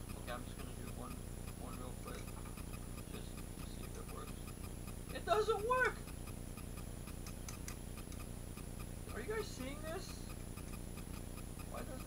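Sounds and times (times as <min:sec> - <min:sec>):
clockwork toy ticking: 0:00.0 - 0:12.0.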